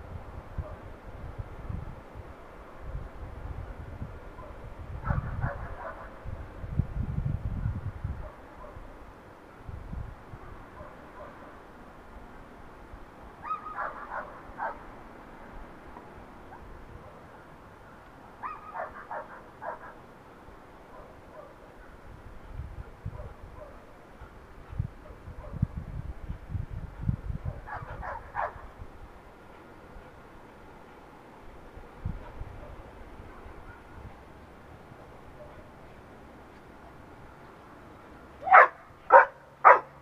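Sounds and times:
dog barking: 4.4 - 6.2, 8.2 - 8.9, 10.8 - 11.5, 13.4 - 14.8, 18.4 - 20.0, 20.9 - 21.6, 23.1 - 23.9, 27.4 - 28.6, 35.4 - 35.6, 38.4 - 40.0.

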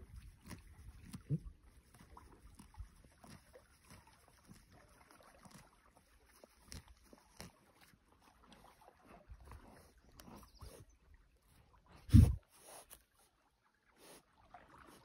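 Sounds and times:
horse grazing and chewing grass: 0.0 - 15.0.

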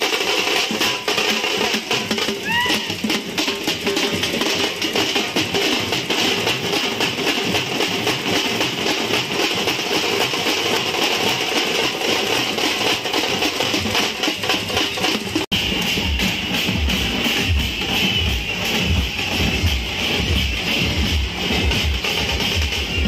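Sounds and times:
drum band playing fast rhythm: 0.0 - 23.0.

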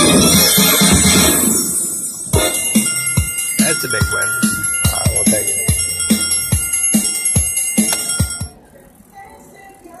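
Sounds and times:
slot machine win jingle: 0.0 - 8.6.

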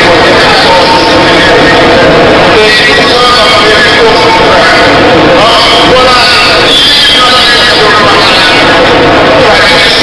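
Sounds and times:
loud distorted voices: 0.0 - 10.0.

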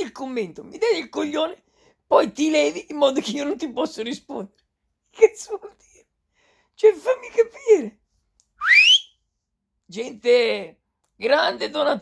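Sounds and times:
man whistling upward slide: 8.6 - 9.1.

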